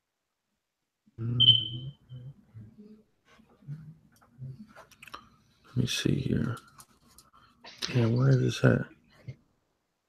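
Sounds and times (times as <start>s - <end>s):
man murmuring: 1.2s - 1.5s
faint low vocal sounds: 1.2s - 4.8s
high-pitched beep: 1.4s - 2.0s.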